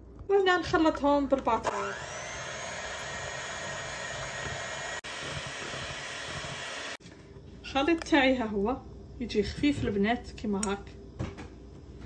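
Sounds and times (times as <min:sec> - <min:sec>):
electric hand mixer whisking batter: 0:01.7 - 0:07.0.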